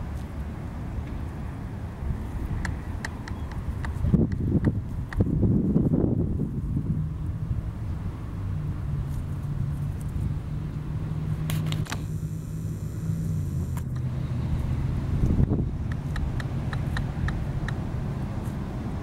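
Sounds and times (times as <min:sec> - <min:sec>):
engine hum: 0:00.0 - 0:19.0.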